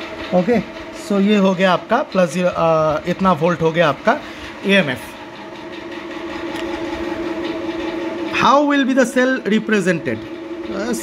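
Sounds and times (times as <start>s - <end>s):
mechanical drone: 0.0s - 11.0s.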